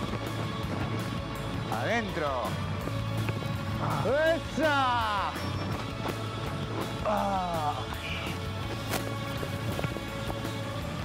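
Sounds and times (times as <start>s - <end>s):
background music: 0.0s - 11.0s
rugby ball kicked: 8.9s - 10.6s.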